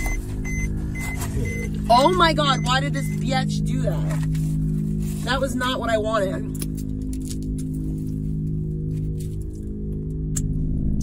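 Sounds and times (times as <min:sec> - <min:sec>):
faint high beeps: 0:00.0 - 0:01.8, 0:02.4 - 0:03.2
low droning hum: 0:00.0 - 0:11.0.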